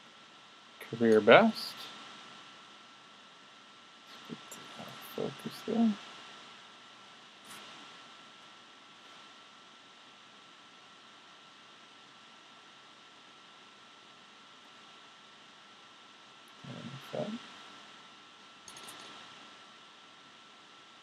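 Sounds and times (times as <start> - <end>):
thin steady whine: 0.0 - 21.0.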